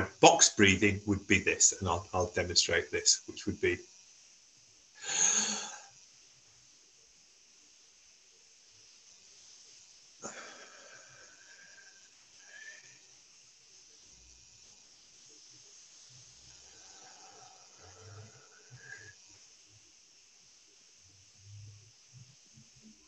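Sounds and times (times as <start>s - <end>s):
slow breathing through nose: 5.0s - 5.9s, 10.3s - 13.2s, 16.5s - 19.2s.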